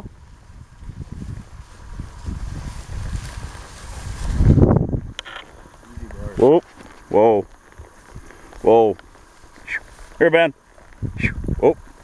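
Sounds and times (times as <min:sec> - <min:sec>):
wind buffeting microphone: 0:00.0 - 0:08.8, 0:10.9 - 0:12.0
rustling through tall grass: 0:00.0 - 0:12.0.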